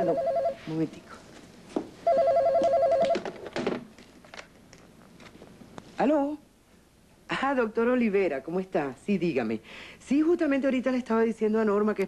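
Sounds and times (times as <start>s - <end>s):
telephone ringing: 0.0s - 0.8s, 2.0s - 3.3s.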